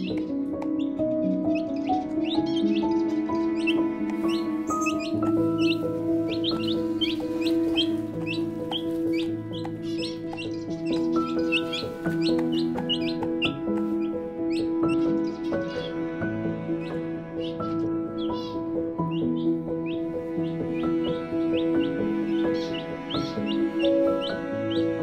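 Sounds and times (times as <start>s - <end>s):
chicks peeping: 0.0s - 16.1s, 16.8s - 25.0s
soft background music: 0.0s - 25.0s.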